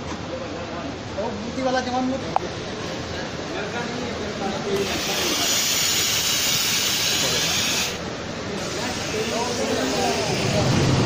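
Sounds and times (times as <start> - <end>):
steam iron hissing: 4.8 - 8.0.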